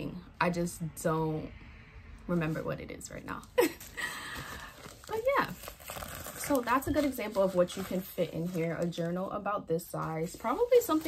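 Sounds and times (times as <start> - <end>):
plastic mailer rustling: 3.6 - 11.0.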